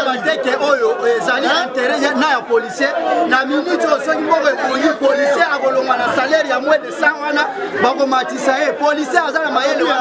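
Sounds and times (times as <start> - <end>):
man talking: 0.0 - 10.0
overlapping voices: 0.0 - 10.0.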